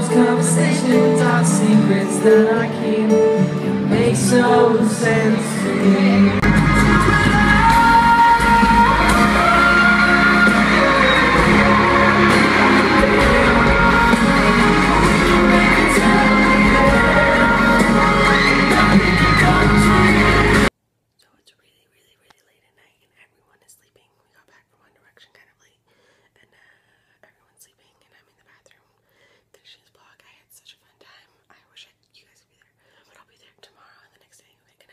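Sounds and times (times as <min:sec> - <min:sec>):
amplified pop music: 0:00.0 - 0:20.7
crowd at concert: 0:00.0 - 0:20.7
woman whispering: 0:21.2 - 0:29.0, 0:29.6 - 0:34.9.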